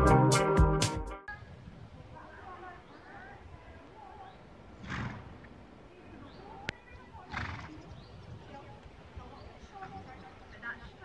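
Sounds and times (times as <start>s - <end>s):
horse blowing: 4.8s - 5.5s, 7.3s - 7.8s.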